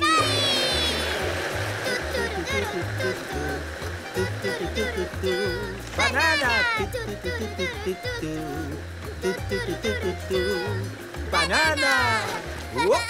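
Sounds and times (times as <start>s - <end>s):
blender whirring: 0.0s - 13.0s
music with repeating bass line: 1.3s - 13.0s.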